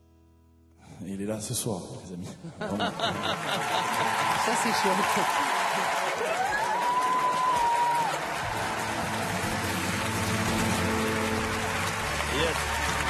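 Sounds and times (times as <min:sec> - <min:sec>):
audience applause and cheering: 0:02.7 - 0:13.0
background music with low bass: 0:08.2 - 0:13.0.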